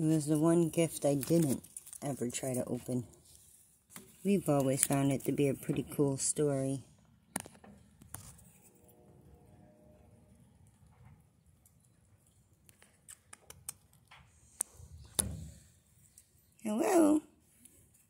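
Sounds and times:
faint low hum: 8.4 - 12.7.

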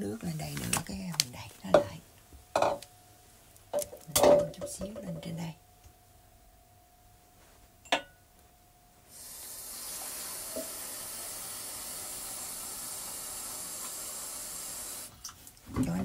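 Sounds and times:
dishware clink: 7.8 - 8.2
water pouring: 9.2 - 14.9.

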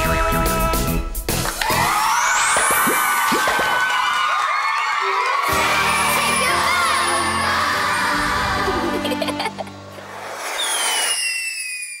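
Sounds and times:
music: 0.0 - 2.1, 5.0 - 10.3
hissing with sliding whistle: 10.1 - 12.0.

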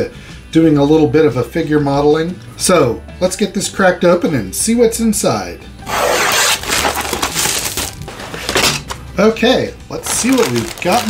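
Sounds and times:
plastic shrink-wrap crackling tear: 5.9 - 9.0, 10.0 - 11.0.

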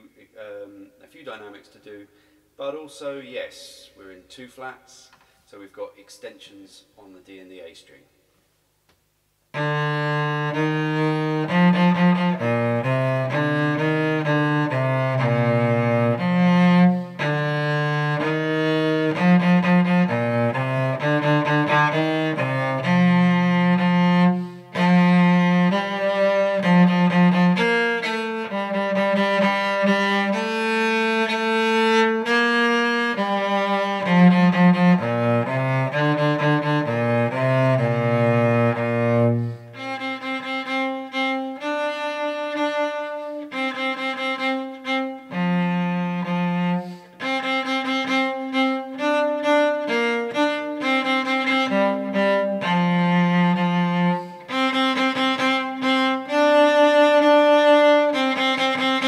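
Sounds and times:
bowed cello ragtime melody: 9.5 - 59.0.

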